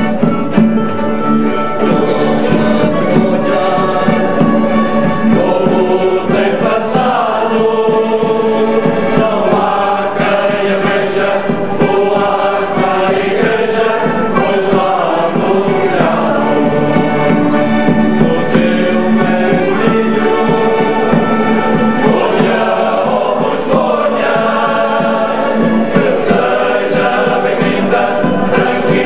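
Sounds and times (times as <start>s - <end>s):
held instrumental tones: 0.0s - 29.0s
men singing in chorus: 2.0s - 29.0s.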